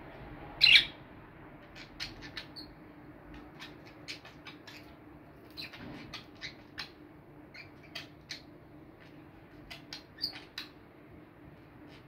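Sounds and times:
budgerigar chirps: 0.6s - 1.0s, 1.8s - 2.7s, 5.6s - 8.5s, 9.7s - 10.8s.

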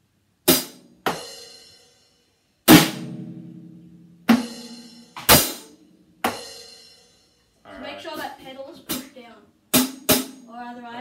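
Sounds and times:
drum and cymbal hits: 0.5s - 1.8s, 2.7s - 7.2s, 9.7s - 10.5s.

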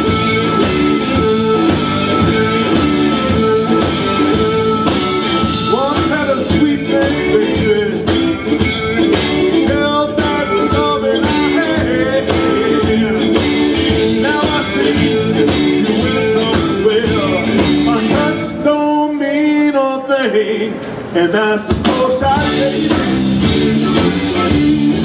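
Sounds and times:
steady drum beat: 0.0s - 18.6s, 21.7s - 25.0s
live band playing: 0.0s - 19.3s, 20.7s - 25.0s
man singing: 0.0s - 24.6s.

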